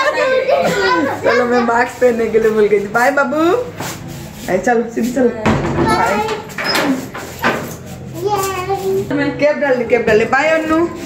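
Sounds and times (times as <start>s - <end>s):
child talking: 0.0s - 2.0s, 5.7s - 6.5s, 8.1s - 9.1s
people talking: 0.0s - 3.7s, 8.2s - 11.0s.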